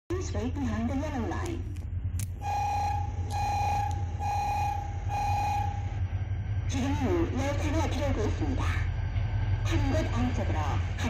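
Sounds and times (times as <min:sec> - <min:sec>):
steady low hum: 0:00.1 - 0:11.0
electronic warning beeps: 0:02.4 - 0:06.0.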